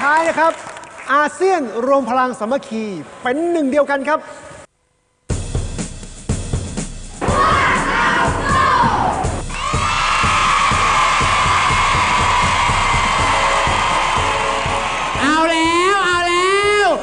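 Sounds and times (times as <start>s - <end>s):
background music with steady beat: 5.3s - 17.0s
children shouting and cheering: 7.2s - 15.2s
man's voice: 15.2s - 17.0s.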